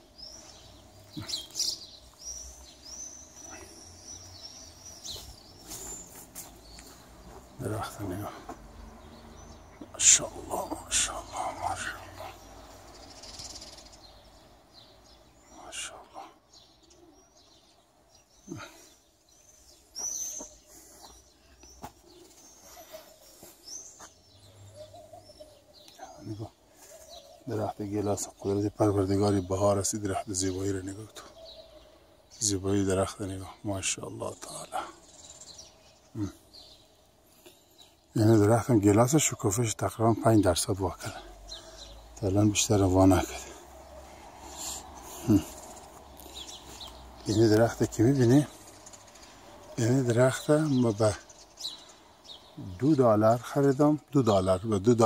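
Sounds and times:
small birds chirping: 0.0s - 55.0s
short loud bird calls: 41.1s - 53.4s.

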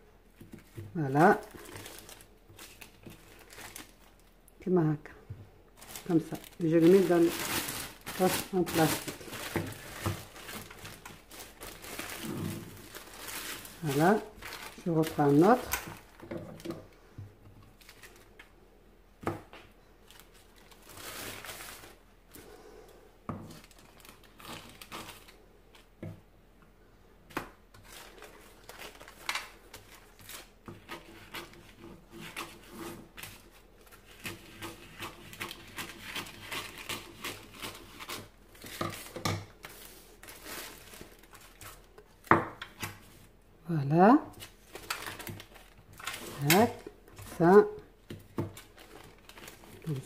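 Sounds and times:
paper and plastic bag rustling: 0.3s - 4.4s, 5.8s - 17.0s, 17.6s - 18.6s, 20.0s - 22.6s, 23.5s - 26.0s, 27.7s - 42.4s, 44.3s - 50.0s.

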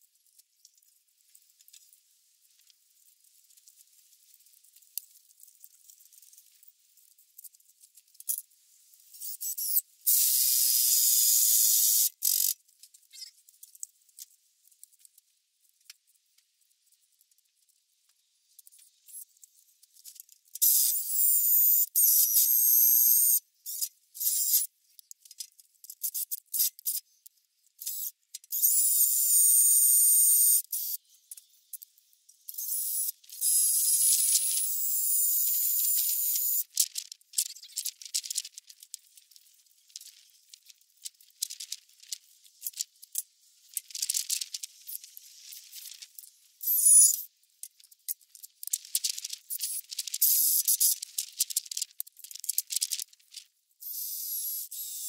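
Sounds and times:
clicks and rattles of handling: 36.7s - 46.4s, 47.6s - 53.5s.

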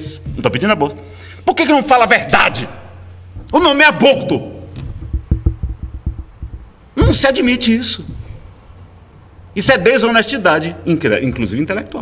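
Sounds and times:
hands knocking on wooden lectern: 4.7s - 7.3s.

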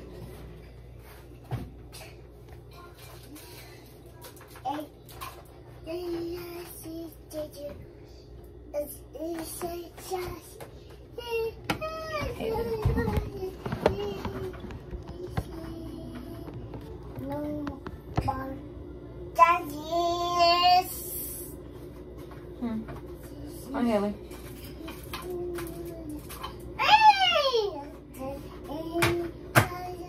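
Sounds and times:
young child singing: 5.8s - 7.8s, 24.8s - 30.0s.

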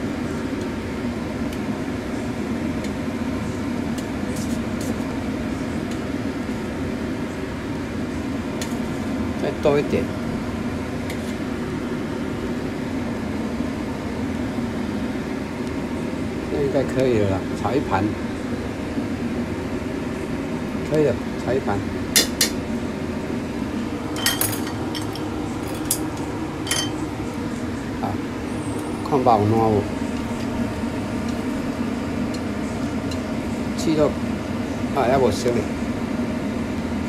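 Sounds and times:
mechanical hum: 0.0s - 37.0s
metal skimmer clinking on pot: 26.6s - 27.0s.

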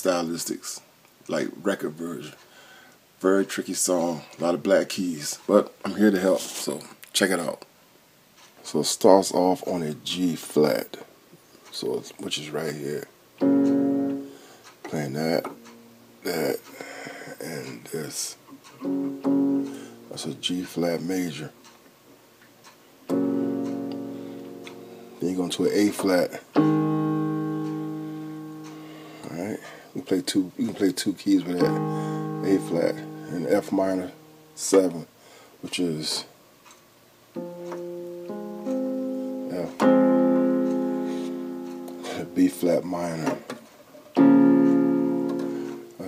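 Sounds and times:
electronic keyboard piano chord: 13.4s - 16.0s, 18.8s - 20.5s, 23.1s - 26.0s, 26.6s - 29.5s, 31.3s - 34.6s, 37.4s - 42.8s, 44.1s - 46.0s.

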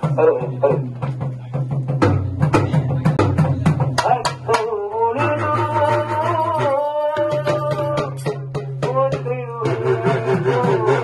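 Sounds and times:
fast drumming: 0.0s - 11.0s
wavering drum drone: 0.0s - 11.0s.

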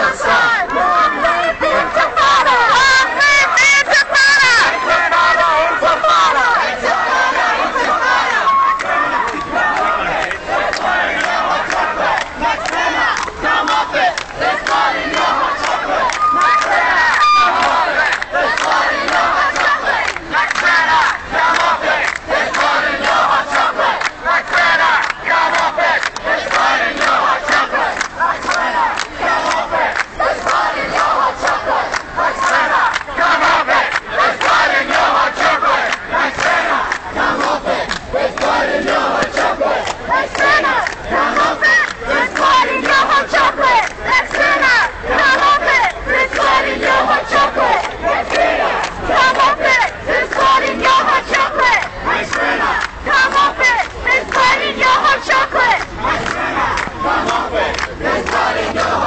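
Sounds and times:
crowd shouting: 0.0s - 59.0s.

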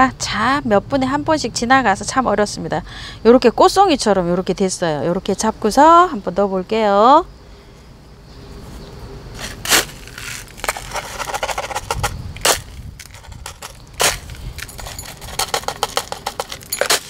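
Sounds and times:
scraping: 8.6s - 17.0s
sharp clicks and knocks: 10.1s - 17.0s.

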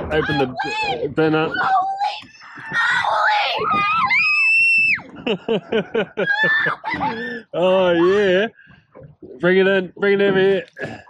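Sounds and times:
person laughing: 5.2s - 7.3s
person screaming excitedly: 6.2s - 7.2s.

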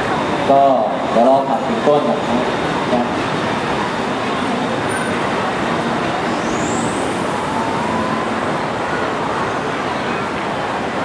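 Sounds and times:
crowded mall background din: 0.0s - 11.0s.

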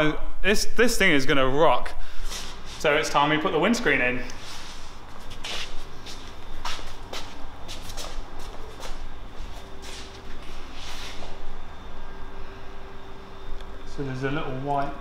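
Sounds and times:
faint steady hum: 0.0s - 15.0s
shuffling footsteps: 4.4s - 11.5s.

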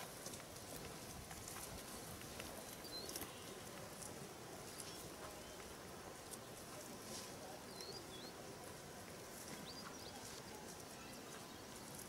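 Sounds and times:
faint outdoor background noise: 0.0s - 12.0s
bird chirps: 7.7s - 8.4s.

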